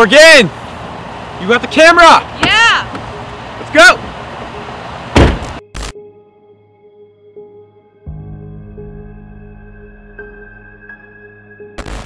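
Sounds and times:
truck door slamming: 5.1 - 5.6
short thud: 5.2 - 5.5
soft sustained music tone: 6.0 - 11.8.

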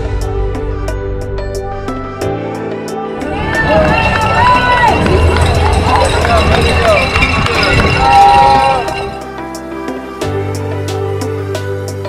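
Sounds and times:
spectators cheering and shouting: 3.0 - 9.2.

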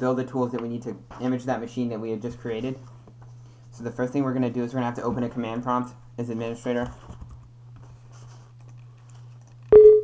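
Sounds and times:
low electrical hum: 0.0 - 10.0
short electronic beep: 9.8 - 10.0.

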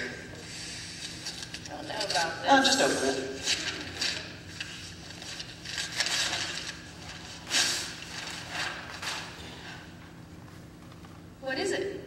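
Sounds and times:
wrapping paper rustling and tearing: 3.4 - 9.8.

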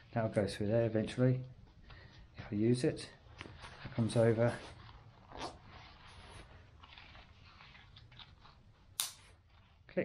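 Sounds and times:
nylon pouch rustling: 3.2 - 10.0.

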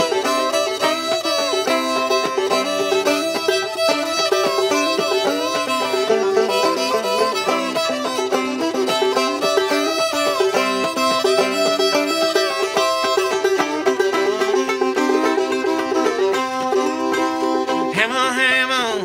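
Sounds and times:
banjo plucking: 0.0 - 19.0
fiddle bowed melody: 0.0 - 19.0.

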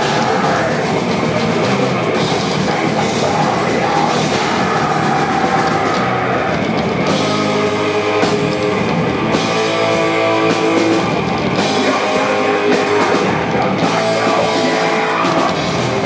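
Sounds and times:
distorted electric guitars: 0.0 - 16.0
pounding drum kit: 0.0 - 16.0.

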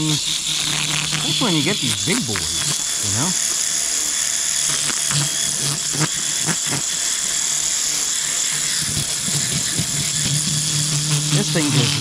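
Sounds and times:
electric fish scaler motor humming: 0.0 - 12.0.

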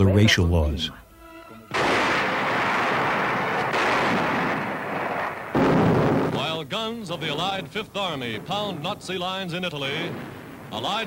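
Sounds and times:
artillery fire and explosions: 1.7 - 11.0.

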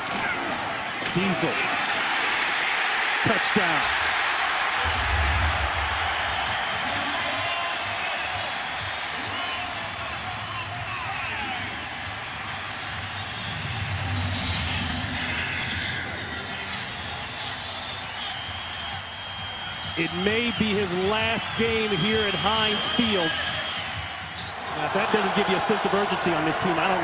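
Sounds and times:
stadium crowd cheering: 0.0 - 27.0.

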